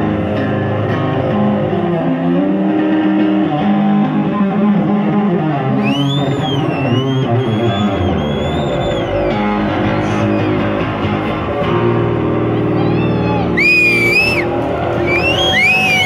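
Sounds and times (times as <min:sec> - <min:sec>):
electric bass guitar: 0:00.0 - 0:16.0
high wavering whistle-like tone: 0:05.8 - 0:10.6, 0:13.6 - 0:16.0.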